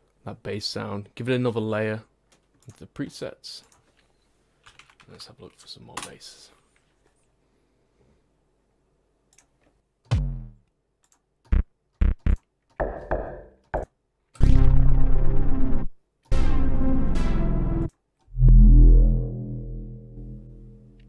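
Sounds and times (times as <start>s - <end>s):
synthesizer bass notes: 10.1s - 10.6s, 11.5s - 13.4s, 14.4s - 21.0s.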